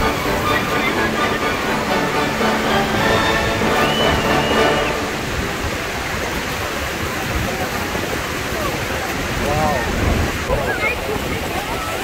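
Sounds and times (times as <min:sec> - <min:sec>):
music: 0:00.0 - 0:05.5
waterfall roaring: 0:00.0 - 0:12.0.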